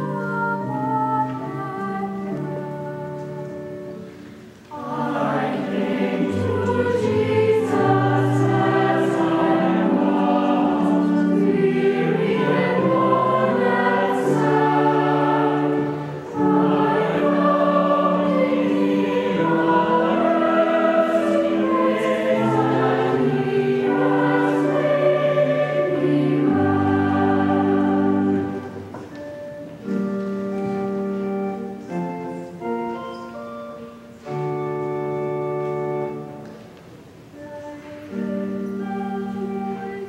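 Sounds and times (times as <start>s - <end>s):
church choir singing: 0.0s - 36.6s, 37.4s - 40.0s.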